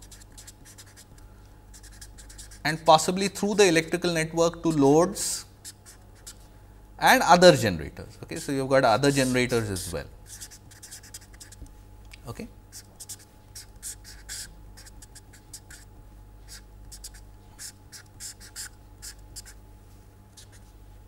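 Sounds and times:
marker pen scratching on paper: 0.0s - 2.7s, 5.6s - 6.4s, 10.3s - 11.6s, 12.7s - 19.6s, 20.4s - 20.8s
faint steady hum: 0.0s - 21.0s.

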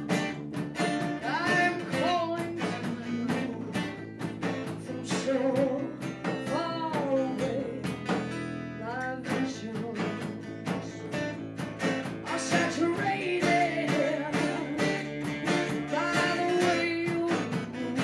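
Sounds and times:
electric bass: 0.0s - 18.0s
lead guitar: 0.0s - 18.0s
strummed acoustic guitar: 0.0s - 18.0s
woman singing: 1.2s - 8.1s, 8.8s - 11.2s, 12.0s - 18.0s
hand percussion: 9.2s - 18.0s.

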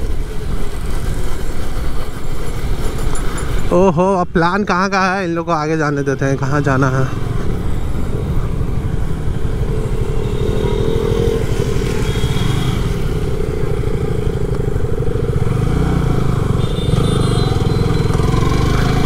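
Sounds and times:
motorcycle engine running: 6.9s - 19.0s.

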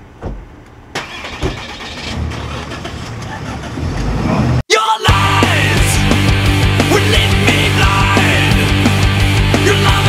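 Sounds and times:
car engine starting and running: 0.0s - 4.6s
car door shutting: 0.2s - 0.5s, 1.4s - 1.6s.

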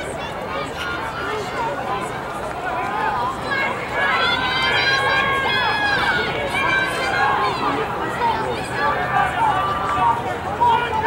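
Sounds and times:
spectators shouting encouragement: 0.0s - 11.0s.

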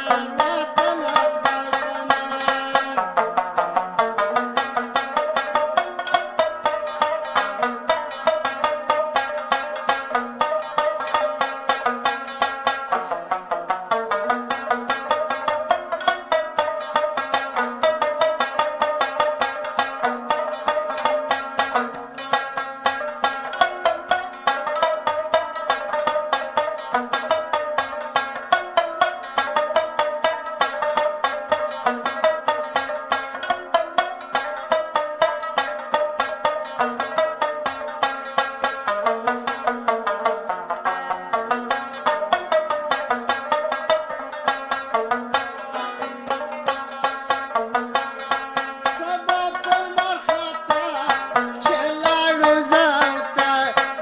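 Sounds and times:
rapidly plucked lute melody: 0.0s - 54.0s.

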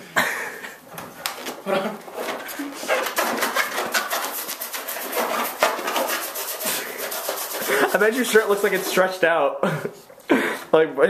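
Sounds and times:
people laughing hard: 7.5s - 8.3s, 9.6s - 10.7s.

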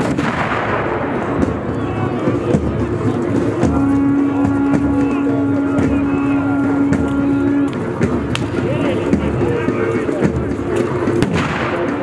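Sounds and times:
black-powder gun blast: 0.0s - 1.4s, 11.2s - 12.0s.

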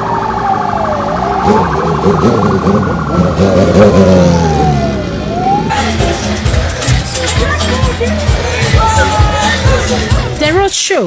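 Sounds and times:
siren wailing: 0.0s - 6.1s
street noise: 0.0s - 11.0s.

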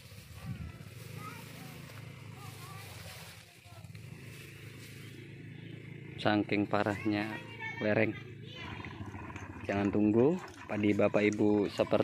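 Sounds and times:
small engine humming: 0.0s - 12.0s.

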